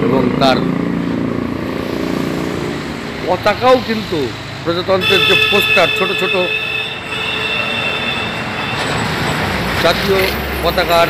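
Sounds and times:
road noise: 0.0 - 11.0
vehicle engine humming: 0.6 - 11.0.

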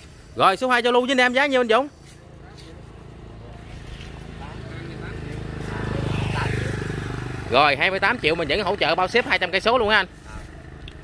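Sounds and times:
motorcycle engine passing: 2.4 - 11.0.

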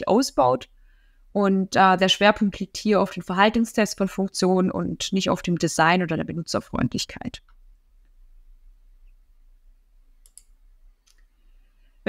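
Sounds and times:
faint quick clicks: 10.2 - 11.3.

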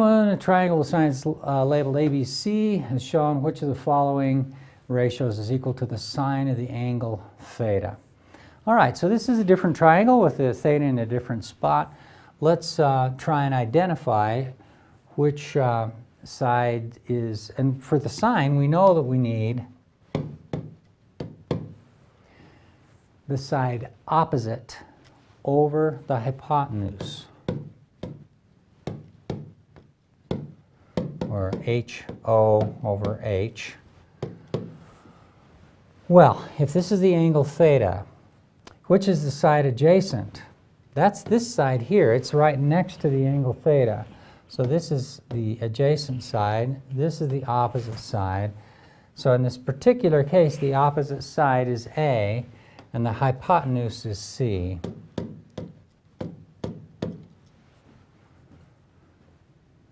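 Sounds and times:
stylus tapping on touchscreen: 20.1 - 21.8, 27.0 - 33.2, 34.2 - 34.8.

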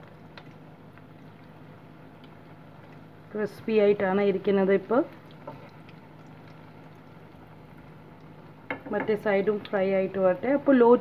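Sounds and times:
oil sizzling and bubbling: 0.0 - 11.0.

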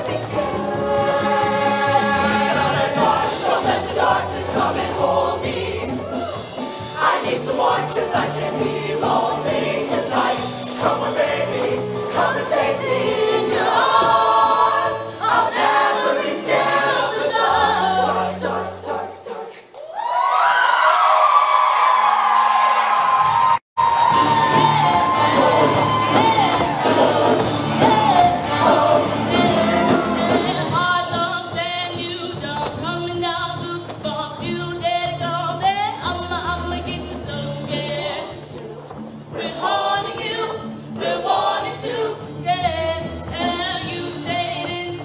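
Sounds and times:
choir singing: 0.0 - 19.7, 24.0 - 32.1, 37.3 - 45.0.

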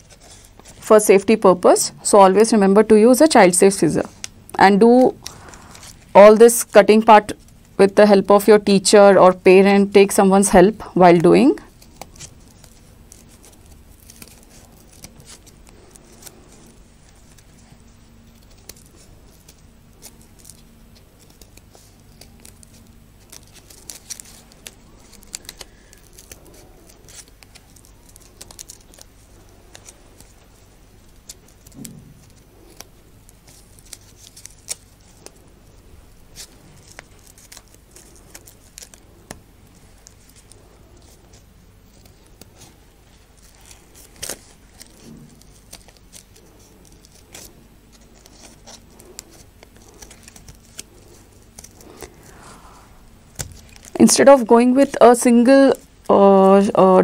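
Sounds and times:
paper rustling: 0.0 - 1.0, 3.2 - 7.7, 9.8 - 55.0
scissors snipping paper: 3.3 - 7.5, 10.0 - 52.4, 53.3 - 55.0.

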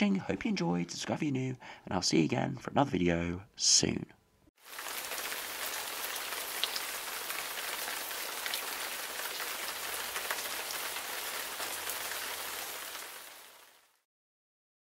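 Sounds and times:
steady rain hiss: 4.6 - 14.0
rain drop ticks: 4.8 - 13.2.

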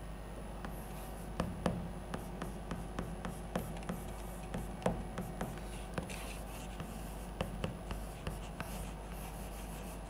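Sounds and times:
chalk tapping on chalkboard: 0.6 - 10.0
chalk scraping: 5.4 - 10.0.

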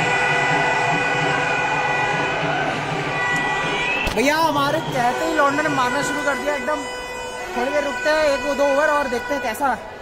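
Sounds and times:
stadium crowd: 0.0 - 10.0.

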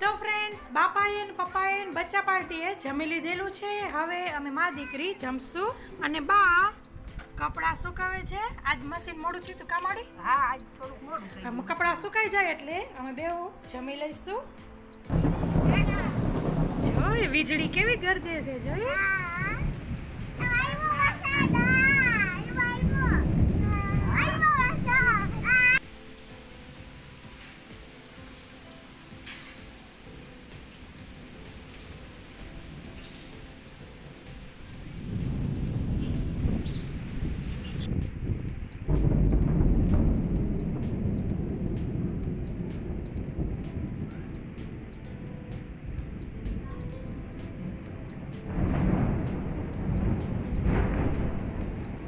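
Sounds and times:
rain: 0.0 - 13.4, 15.1 - 52.0
children calling and shrieking: 4.5 - 5.2, 18.7 - 25.8
rolling thunder: 15.1 - 27.3, 30.4 - 52.0.

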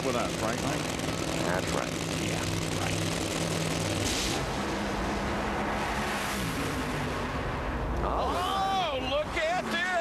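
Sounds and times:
drag racing engines at full throttle: 0.0 - 10.0.

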